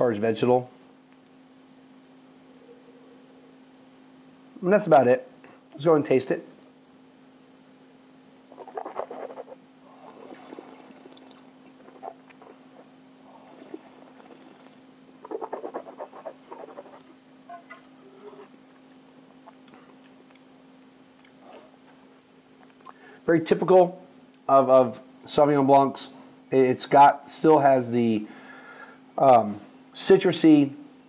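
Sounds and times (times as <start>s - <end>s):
low electrical hum: 0.0s - 31.0s
wet slurping of wine in mouth: 9.9s - 12.6s.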